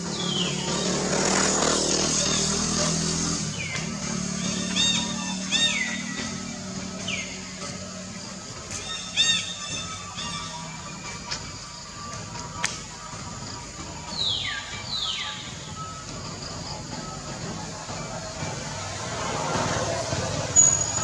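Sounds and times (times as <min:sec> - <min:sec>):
baby monkey squeals: 0:04.4 - 0:06.2, 0:08.8 - 0:10.6.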